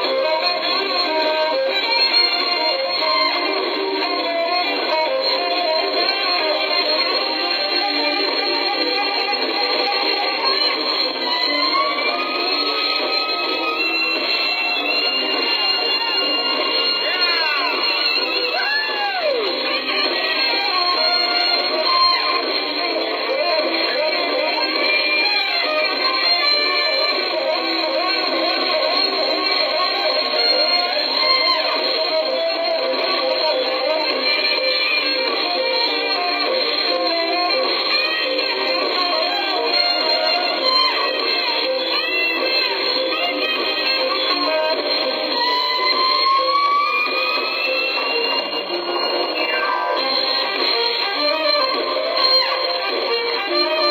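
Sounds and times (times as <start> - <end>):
guitar: 0.0 - 53.9
smooth jazz band playing: 0.1 - 53.9.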